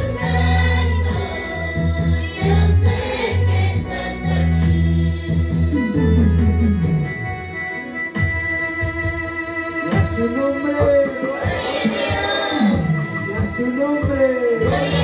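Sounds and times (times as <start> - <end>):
electronic keyboard organ music: 0.0 - 15.0.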